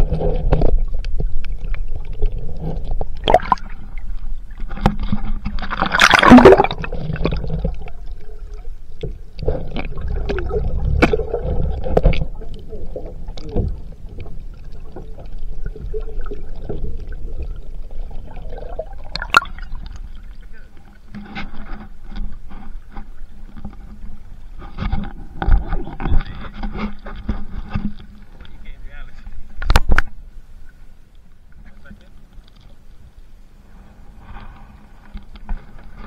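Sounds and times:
water splashing and gurgling: 0.0s - 28.8s.

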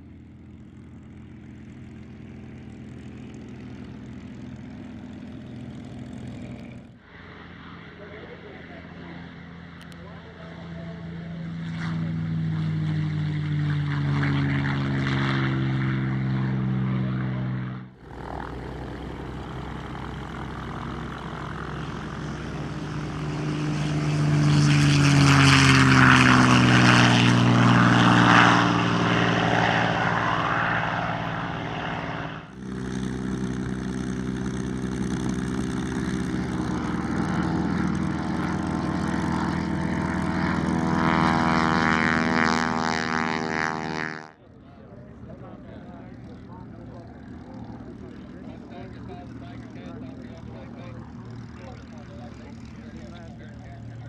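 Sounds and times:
plane taxiing at low power: 0.0s - 54.0s
propeller plane engine passing: 0.0s - 54.0s.

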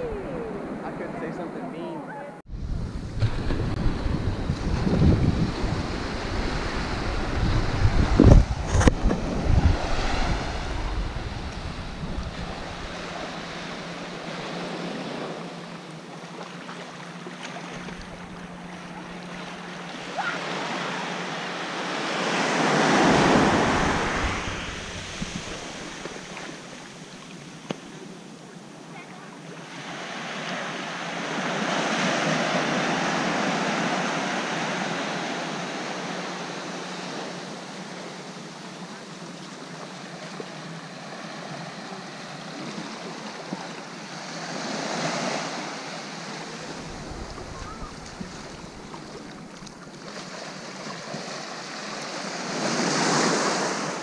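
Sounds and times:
surf waves washing on sand: 2.6s - 54.0s.

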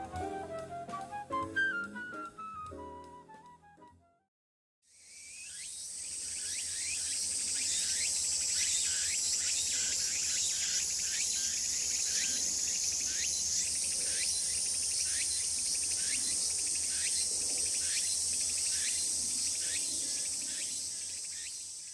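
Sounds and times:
insects shrill drone: 4.9s - 21.9s
rising insect chirp: 4.9s - 21.9s.

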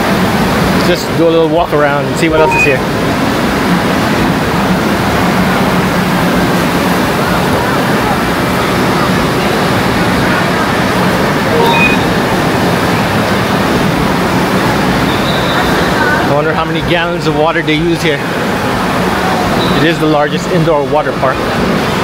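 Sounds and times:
rushing and splashing water: 0.0s - 2.2s, 2.8s - 22.0s
brief high-pitched call: 2.3s - 2.8s, 11.5s - 12.2s
echoing crowd chatter: 4.4s - 13.4s, 18.2s - 20.2s.

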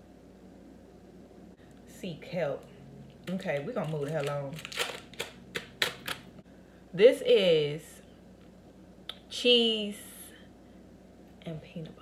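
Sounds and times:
plastic wrapper crinkling: 3.2s - 6.3s.

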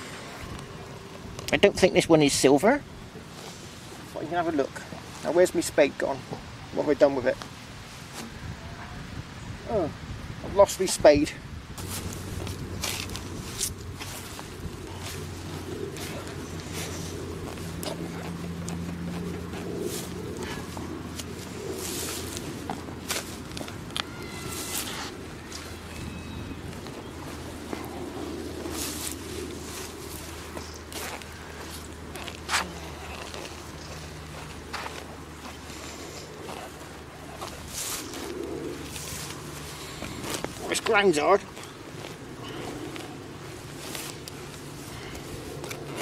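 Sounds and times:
steady low hum: 0.0s - 9.4s, 11.6s - 46.0s
boots shifting on grass: 11.8s - 46.0s.

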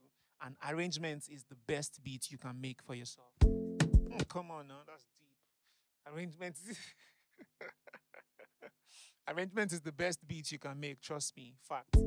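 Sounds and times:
in-breath: 0.1s - 0.4s, 5.6s - 5.9s, 8.8s - 9.2s
man chuckling softly: 6.7s - 9.1s.

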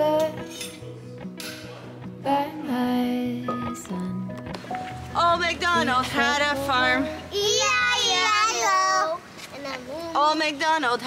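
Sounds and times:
background music: 0.0s - 8.7s
metal spoons clinking: 0.2s - 0.9s.

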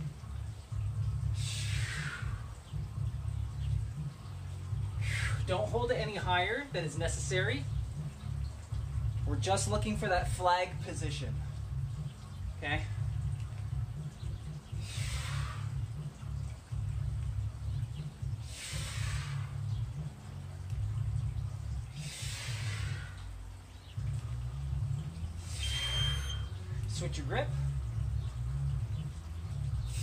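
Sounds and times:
steady low rumble: 0.0s - 30.0s
man exhaling hard: 1.4s - 2.5s, 5.0s - 5.4s, 14.8s - 15.8s, 18.4s - 19.6s, 22.0s - 23.3s.

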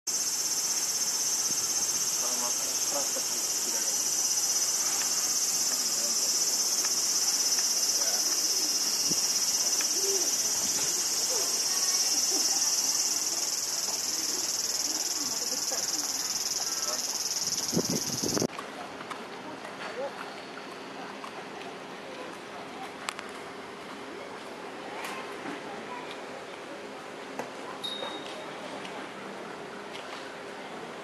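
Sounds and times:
insects chirping: 0.1s - 18.5s
faint distant voices: 1.4s - 31.0s.

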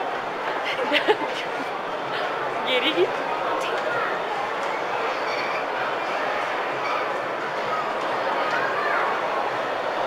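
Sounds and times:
crowd hubbub: 0.0s - 10.0s.

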